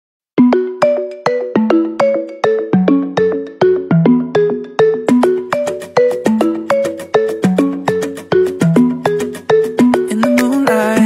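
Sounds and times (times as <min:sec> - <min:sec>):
bell-like melody: 0:00.4 - 0:11.0.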